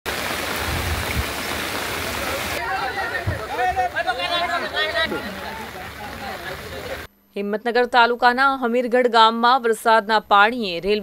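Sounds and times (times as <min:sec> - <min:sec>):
heavy rain: 0:00.0 - 0:07.1
rushing floodwater: 0:00.1 - 0:07.1.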